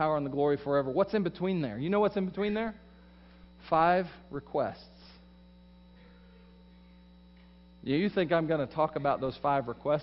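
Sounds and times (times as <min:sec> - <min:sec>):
man speaking: 0:00.0 - 0:02.9, 0:03.6 - 0:05.3, 0:07.8 - 0:10.0
electrical mains hum: 0:00.0 - 0:10.0.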